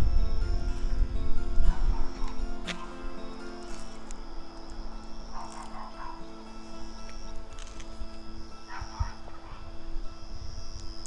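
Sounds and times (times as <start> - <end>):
wind rumble on microphone: 0.0 - 3.3, 7.2 - 11.0
background music sustained tones: 0.0 - 11.0
dog barking: 1.7 - 2.9, 5.4 - 6.2, 8.7 - 9.7.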